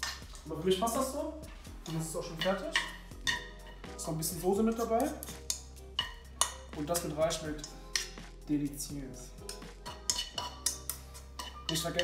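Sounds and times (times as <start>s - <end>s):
background music: 0.0s - 12.0s
metal utensil scraping frying pan: 1.8s - 3.9s, 5.4s - 6.6s, 9.4s - 12.0s.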